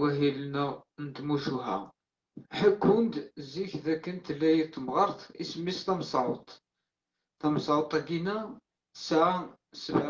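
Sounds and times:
person talking: 0.0 - 6.6, 7.4 - 10.0.

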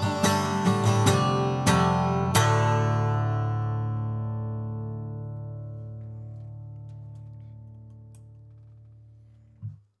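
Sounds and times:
acoustic guitar chord ringing: 0.0 - 7.6.

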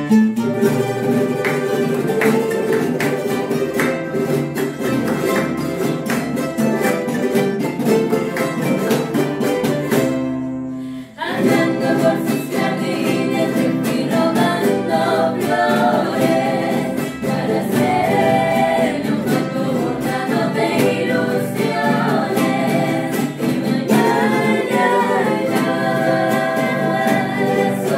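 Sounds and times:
charango strumming: 0.0 - 27.9
women singing a folk song: 10.9 - 27.9.

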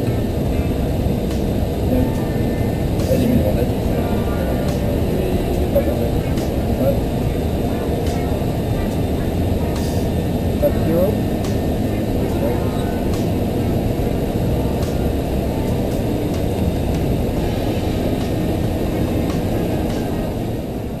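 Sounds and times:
airplane cockpit engine noise: 0.0 - 21.0
faint voices: 0.0 - 21.0.

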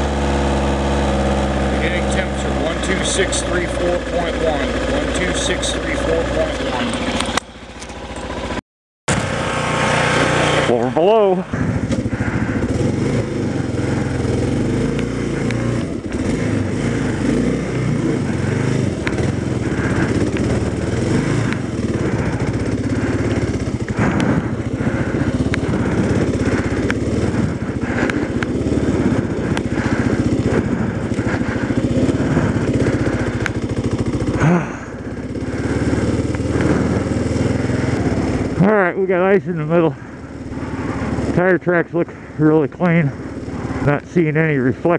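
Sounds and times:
motorcycle engine running: 0.0 - 44.9.

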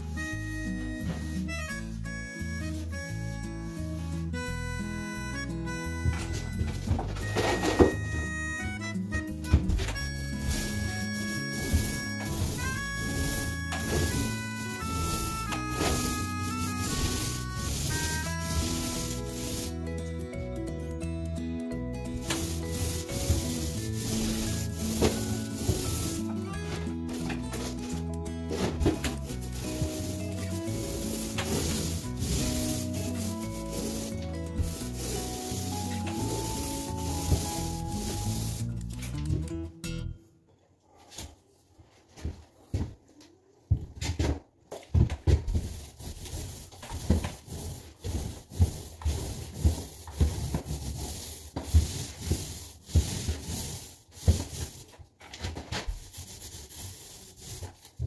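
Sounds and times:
paint roller rubbing on wall: 1.2 - 4.3, 9.9 - 19.8, 22.1 - 38.7, 45.2 - 58.0.

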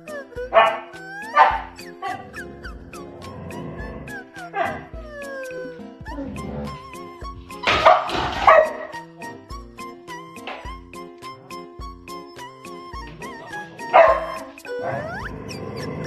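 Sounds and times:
background music with steady beat: 0.0 - 16.0
dog barking loudly: 0.5 - 3.6, 4.4 - 4.9, 7.6 - 9.0, 13.9 - 15.1.

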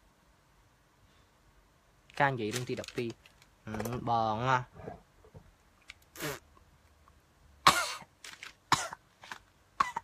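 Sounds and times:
man coughing: 7.7 - 8.1.

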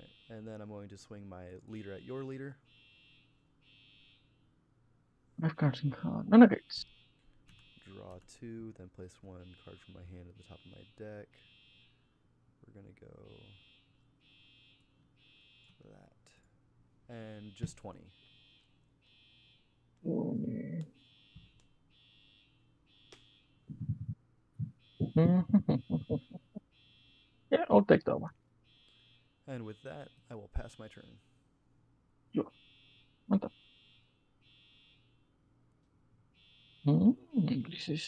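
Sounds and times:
faint low hum: 0.0 - 2.7, 4.3 - 21.6, 23.6 - 26.7, 27.4 - 33.5.

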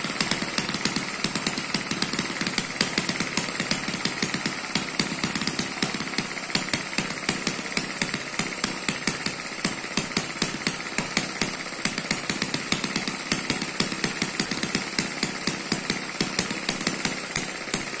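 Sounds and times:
model engine running: 0.0 - 18.0.

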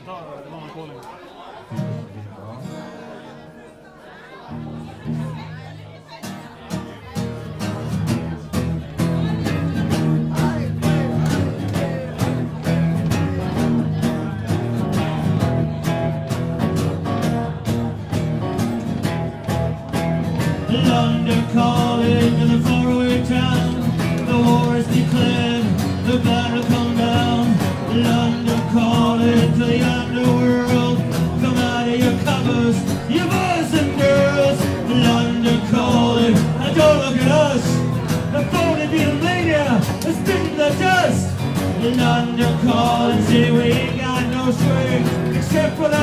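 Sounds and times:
strummed acoustic guitar: 1.6 - 46.0.

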